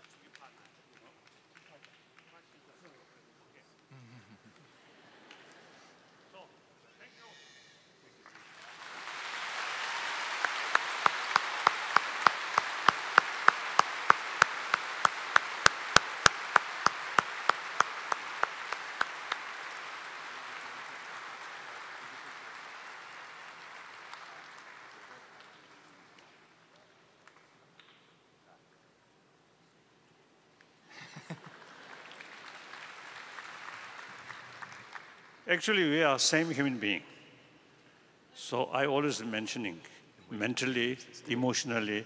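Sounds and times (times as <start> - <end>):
loud close clapping: 0.0 - 2.5, 8.2 - 28.1, 31.0 - 35.8
audience applauding: 8.2 - 27.5, 30.9 - 36.0.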